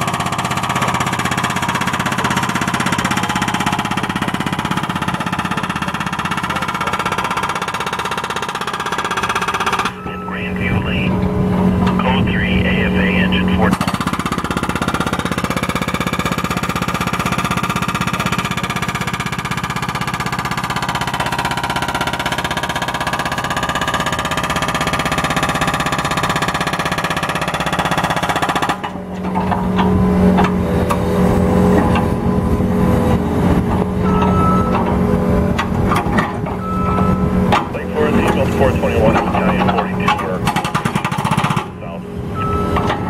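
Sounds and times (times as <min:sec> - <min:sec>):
hydraulic hammer pounding asphalt: 0:00.0 - 0:10.1, 0:13.7 - 0:43.0
diesel engine running: 0:00.0 - 0:43.0
engine knocks: 0:13.7 - 0:43.0.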